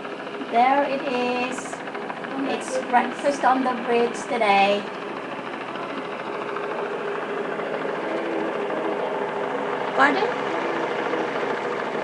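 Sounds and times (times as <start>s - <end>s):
distant helicopter rotor chopping: 0.0s - 12.0s.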